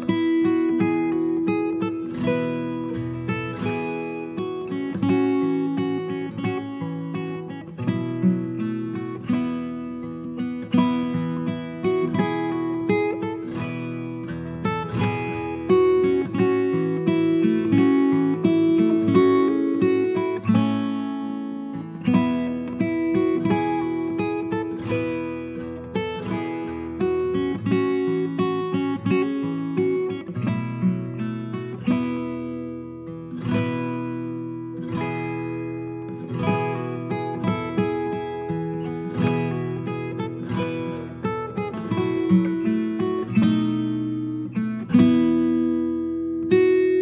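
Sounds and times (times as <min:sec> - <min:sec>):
solo acoustic guitar: 0:00.0 - 0:47.0.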